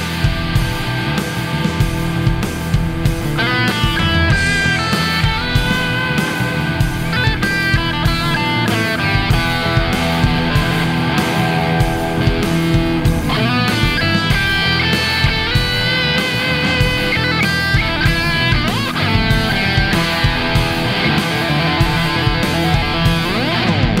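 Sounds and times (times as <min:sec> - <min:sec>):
steady beat: 0:00.0 - 0:24.0
sustained electric guitar lead: 0:00.0 - 0:24.0.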